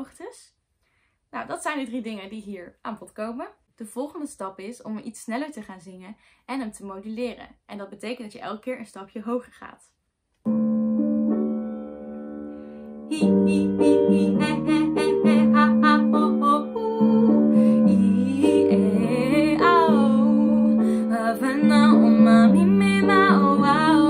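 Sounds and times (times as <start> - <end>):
piano accompaniment: 10.5 - 24.0
woman singing vocal exercises: 13.1 - 24.0.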